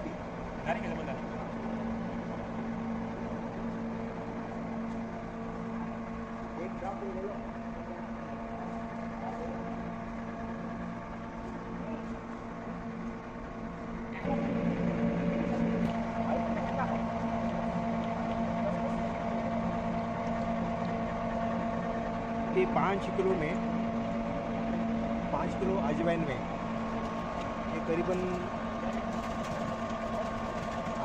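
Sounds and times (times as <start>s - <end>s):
oil press machine humming: 0.0s - 31.0s.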